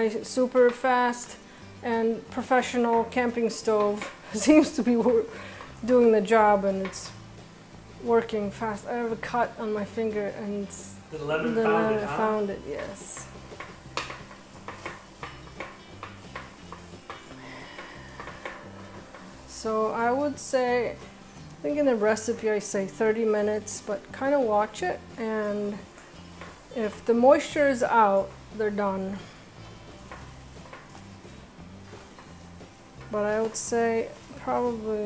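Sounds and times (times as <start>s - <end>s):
quiet background music: 0.0s - 35.0s
spatula scraping frying pan: 11.9s - 21.2s
spatula scraping a frying pan: 12.2s - 21.4s, 24.7s - 34.9s.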